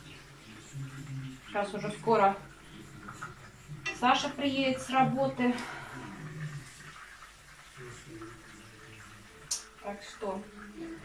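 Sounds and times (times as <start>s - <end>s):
faint low voice: 0.0s - 7.0s, 7.8s - 11.0s.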